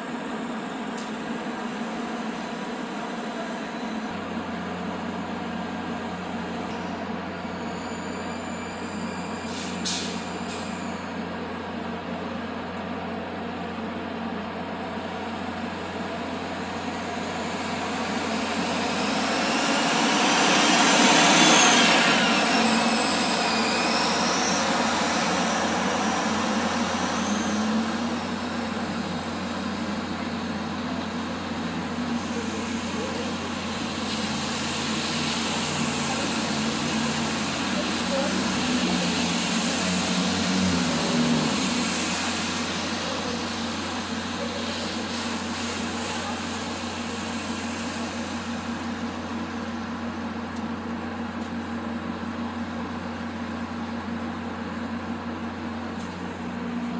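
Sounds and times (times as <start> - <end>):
bus engine and road noise: 0.0 - 56.9.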